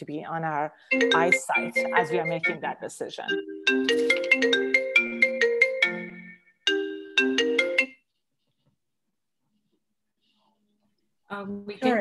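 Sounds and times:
marimba-like phone ringtone: 0:00.8 - 0:08.0.

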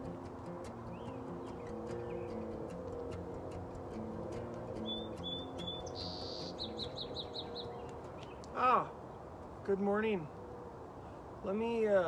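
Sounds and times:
small bird chirping: 0:00.6 - 0:09.2.

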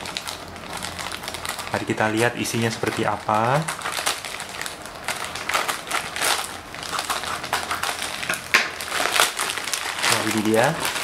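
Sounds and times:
plastic crinkling and crackling: 0:00.0 - 0:11.0
scissors cutting plastic: 0:05.4 - 0:11.0.

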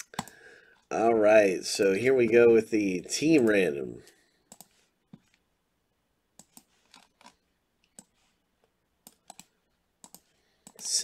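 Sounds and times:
mouse and keyboard clicks: 0:04.5 - 0:05.3, 0:06.4 - 0:08.1, 0:09.0 - 0:10.8.

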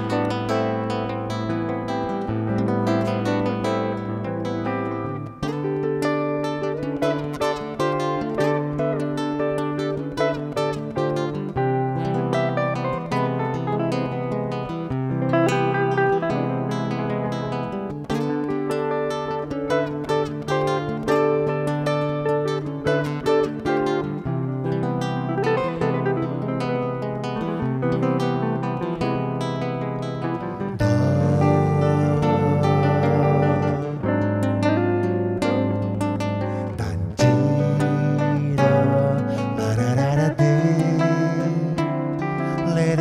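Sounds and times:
acoustic guitar chords: 0:00.0 - 0:43.0
electric guitar picked notes: 0:00.0 - 0:43.0.

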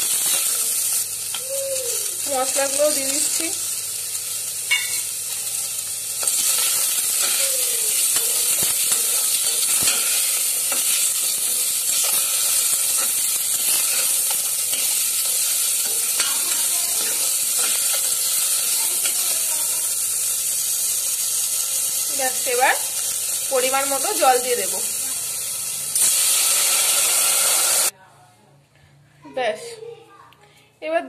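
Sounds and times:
chicken and vegetables sizzling in oil: 0:00.0 - 0:27.9
spatula scraping a pan: 0:06.2 - 0:19.2.

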